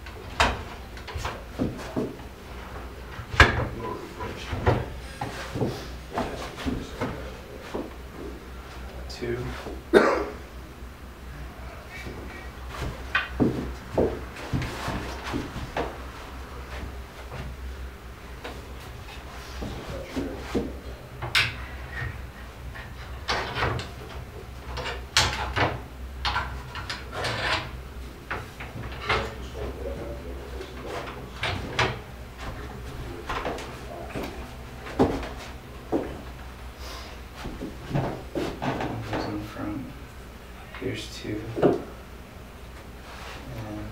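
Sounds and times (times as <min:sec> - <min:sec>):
wooden knocks and clatter: 0:00.0 - 0:08.4, 0:12.1 - 0:17.7, 0:18.4 - 0:30.1, 0:30.7 - 0:36.6, 0:37.4 - 0:39.5, 0:41.5 - 0:41.9.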